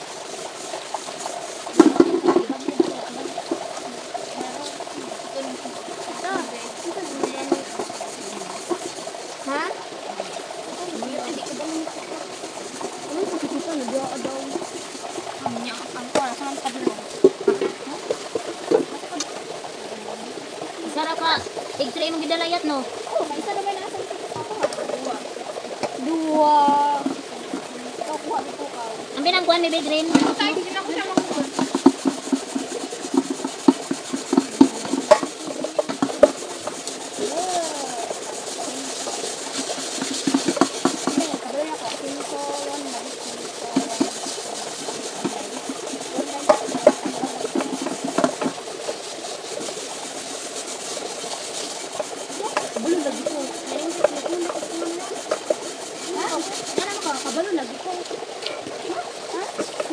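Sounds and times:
metal pots clinking and scraping: 0.0 - 59.9
running splashing water: 0.0 - 59.9
voices: 0.0 - 59.9.

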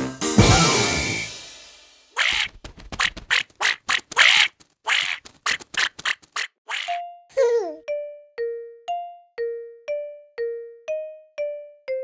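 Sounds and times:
cartoon duckling quacking: 2.2 - 7.0.

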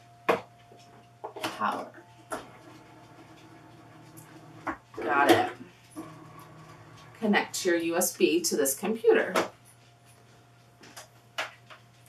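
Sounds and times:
faint machine hum: 0.0 - 12.0.

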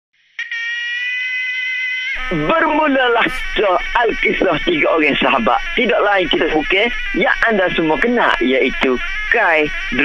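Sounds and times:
steady pitched tone: 0.4 - 10.0.

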